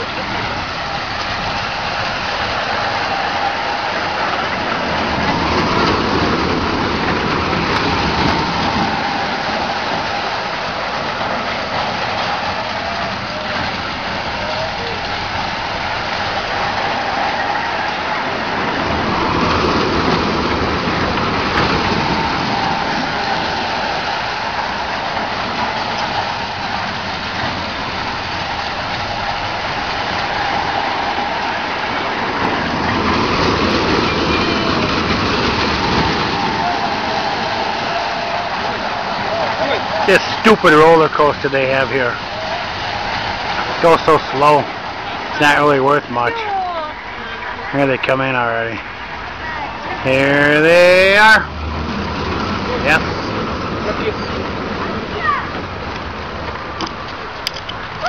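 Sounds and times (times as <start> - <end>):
roller coaster train rumbling on track: 0.0 - 58.0.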